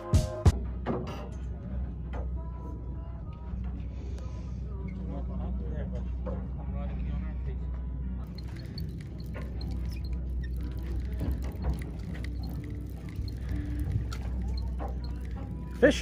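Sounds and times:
music: 0:00.0 - 0:16.0
boat engine idling: 0:08.2 - 0:16.0.

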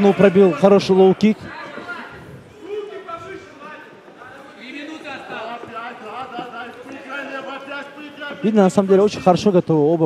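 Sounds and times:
commentary speech: 0:00.0 - 0:10.0.

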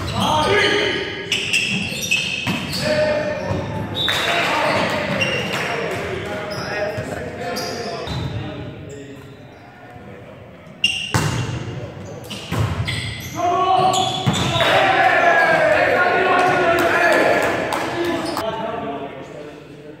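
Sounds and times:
crowd shouting and cheering: 0:13.4 - 0:18.5.

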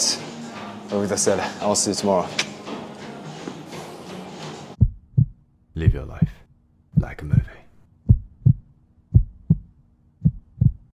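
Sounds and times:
heartbeat thumps: 0:04.8 - 0:10.9.

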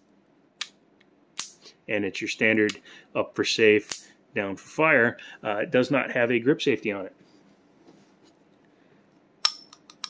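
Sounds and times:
pistol metallic clicks: 0:01.4 - 0:01.6.

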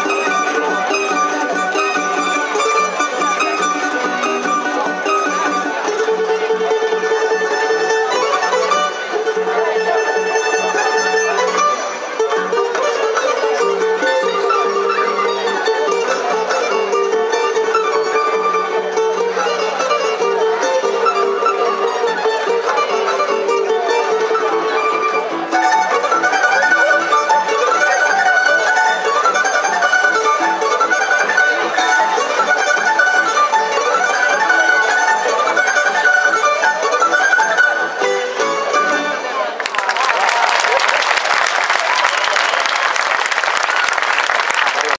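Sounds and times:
plucked tamburicas melody: 0:00.0 - 0:39.6.

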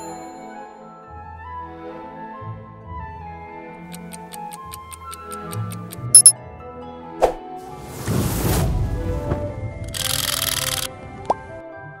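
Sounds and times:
high-pitched dings: 0:04.0 - 0:06.3.

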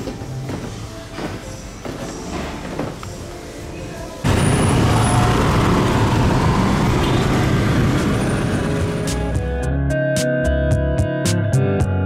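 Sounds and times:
road noise: 0:04.2 - 0:09.5
motorbike engine: 0:04.3 - 0:09.4.

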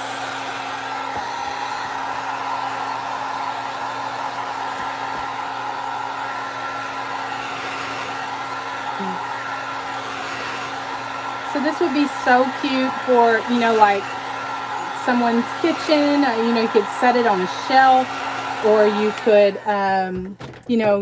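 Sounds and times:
heat gun blowing hot air: 0:00.0 - 0:20.1.

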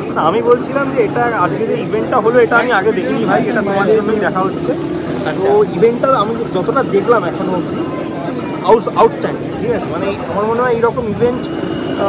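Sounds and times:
man talking: 0:00.0 - 0:07.7, 0:08.6 - 0:11.6.

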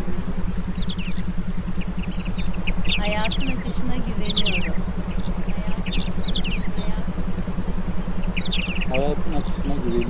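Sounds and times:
pulsing low tone: 0:00.0 - 0:10.0.

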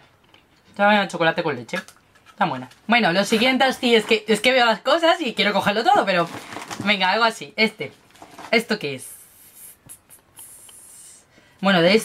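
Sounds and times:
paper and packaging rustling: 0:05.9 - 0:08.7.

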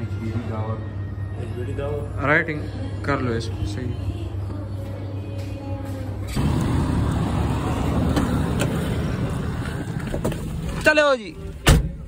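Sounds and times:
low outdoor rumble: 0:06.0 - 0:11.6.

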